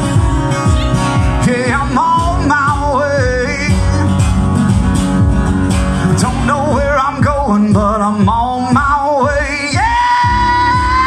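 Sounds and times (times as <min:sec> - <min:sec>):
steady beat: 0:00.0 - 0:11.0
strummed acoustic guitar: 0:00.0 - 0:11.0
man singing with vibrato: 0:00.6 - 0:04.5, 0:06.0 - 0:11.0.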